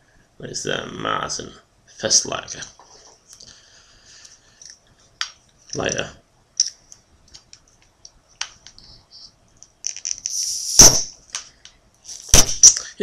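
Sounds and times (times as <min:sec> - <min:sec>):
bottle cap pop with hiss: 0:10.0 - 0:11.1, 0:12.1 - 0:12.9.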